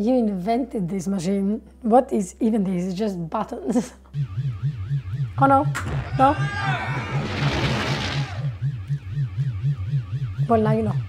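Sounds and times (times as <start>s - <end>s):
high warbling alarm tone: 4.2s - 11.0s
low pulsing buzz: 4.2s - 11.0s.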